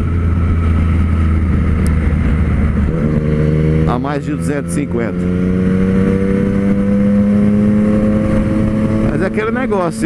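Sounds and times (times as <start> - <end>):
motorcycle engine at highway speed: 0.0 - 10.0.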